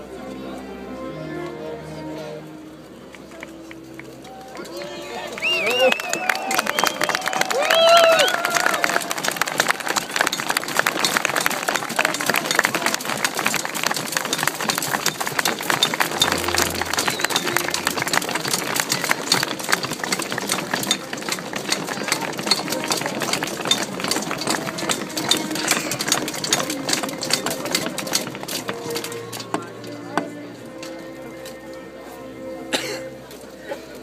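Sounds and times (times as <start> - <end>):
crowd voices: 0.0 - 34.0
weapons clattering on shields: 10.3 - 29.7.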